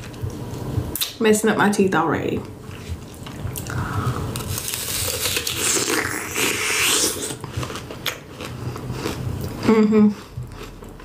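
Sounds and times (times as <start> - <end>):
crunching and chewing candy apple: 3.2 - 11.0.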